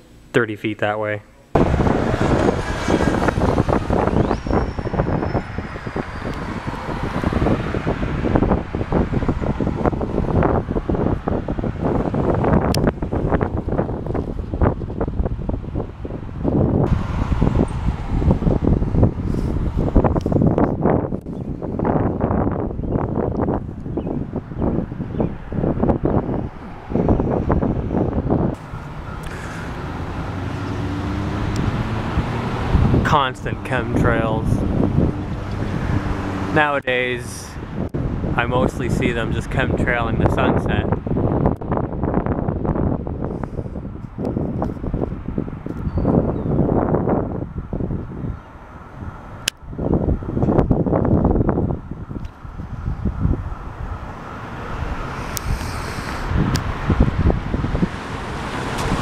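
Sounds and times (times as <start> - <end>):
road traffic rush: 1.4 - 59.0
wind buffeting microphone: 1.5 - 59.0.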